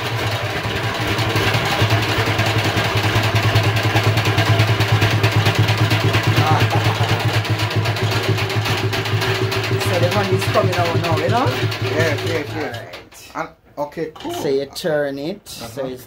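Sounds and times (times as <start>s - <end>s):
honey extractor whirring: 0.0s - 13.2s.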